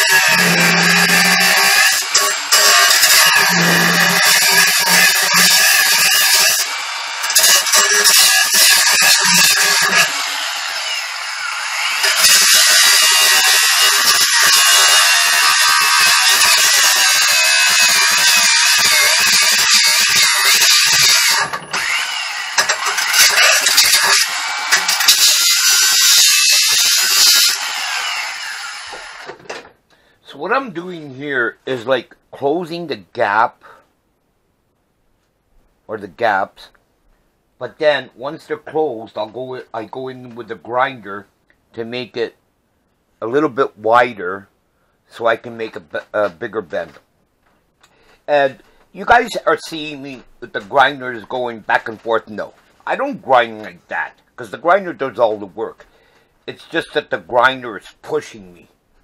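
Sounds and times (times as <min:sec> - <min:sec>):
angle grinder cutting steel: 0:00.0 - 0:29.4.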